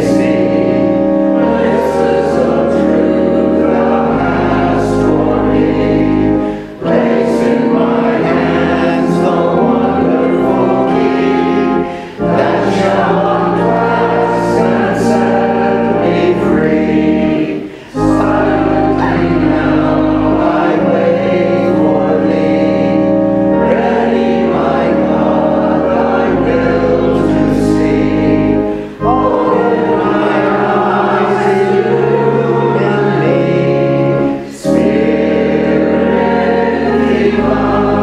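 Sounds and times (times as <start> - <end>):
group singing a hymn: 0.0 - 38.0
organ: 0.0 - 38.0
singers breathing: 6.3 - 6.9, 11.8 - 12.3, 17.6 - 18.1, 28.6 - 29.1.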